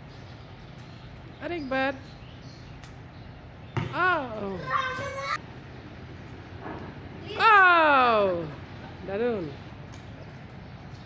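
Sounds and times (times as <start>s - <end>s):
child calling out: 4.4s - 5.4s.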